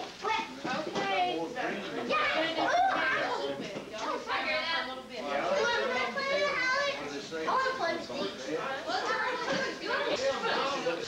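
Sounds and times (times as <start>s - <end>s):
indistinct family chatter: 0.0s - 11.0s
children's high-pitched voices: 5.6s - 7.0s.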